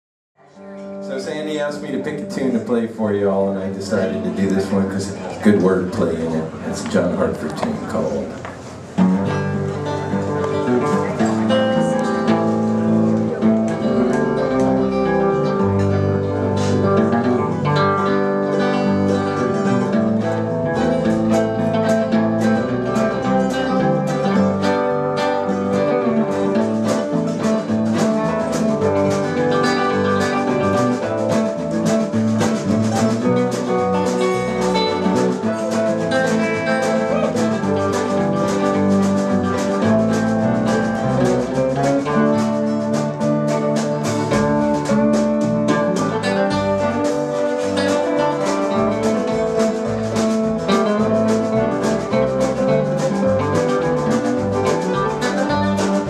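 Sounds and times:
string band playing: 0.5 - 56.0.

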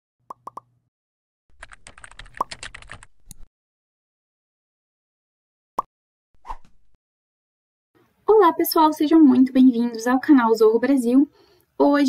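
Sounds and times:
computer keyboard typing: 1.6 - 3.5.

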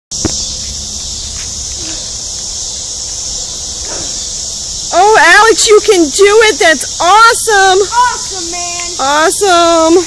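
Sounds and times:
insects chorusing: 0.1 - 10.0.

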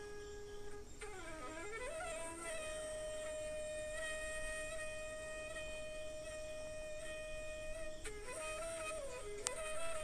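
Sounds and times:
long flute-like note: 0.0 - 10.0.

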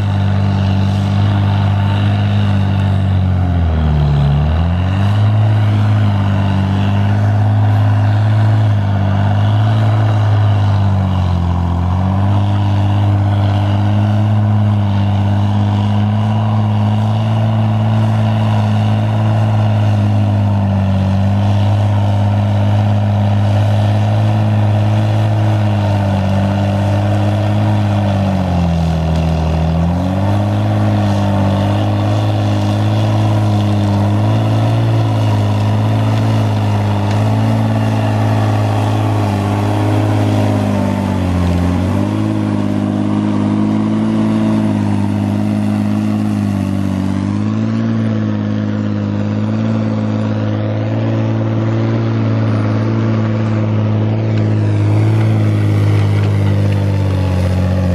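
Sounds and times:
diesel engine under load: 0.0 - 57.9.

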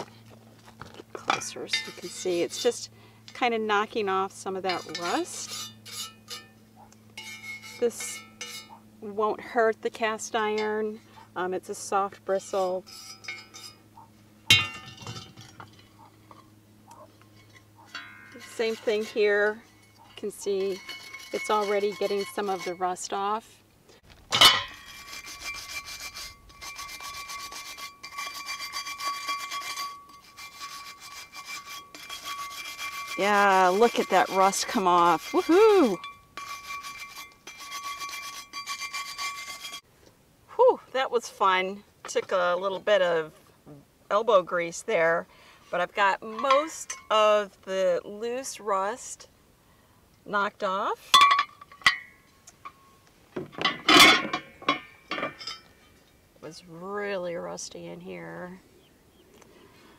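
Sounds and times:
wire brush scrubbing rusty iron: 1.1 - 39.9, 44.1 - 49.3, 50.3 - 58.3
cast iron pieces clinking: 14.5 - 16.5, 17.3 - 18.9, 24.3 - 25.0, 51.1 - 56.0
faint steady ringing tone: 51.1 - 53.1.

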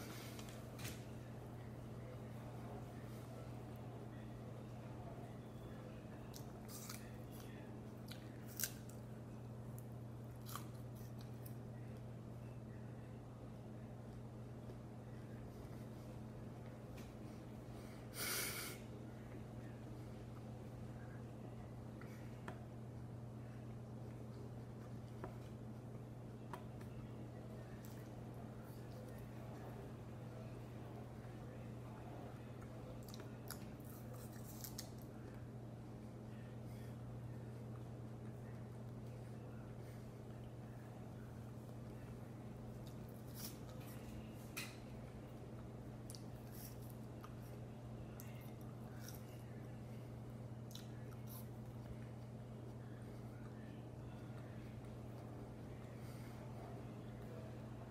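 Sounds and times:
faint low hum: 0.0 - 57.9
apple crunching: 6.3 - 9.1, 9.7 - 11.6, 32.6 - 35.2.

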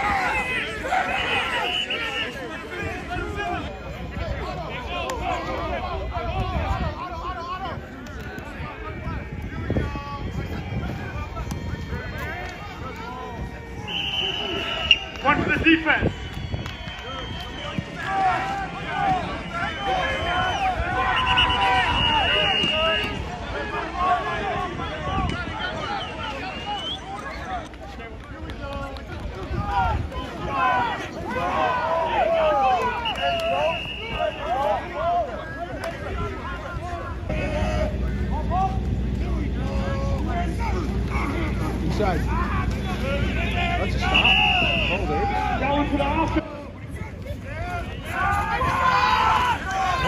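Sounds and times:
crowd talking and calling out: 0.0 - 50.0
long high whistle blast: 13.8 - 15.2, 19.6 - 23.1, 43.4 - 45.2
steady low rumble: 36.2 - 45.6.

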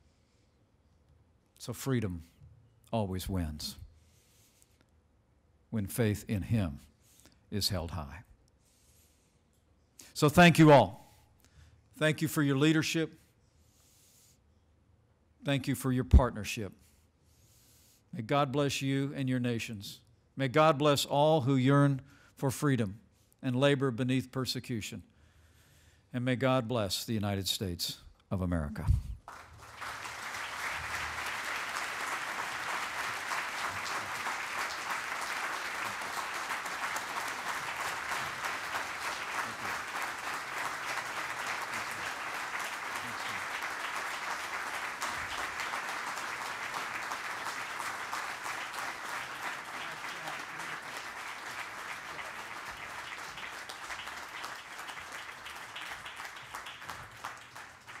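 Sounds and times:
audience applauding: 29.2 - 58.0.

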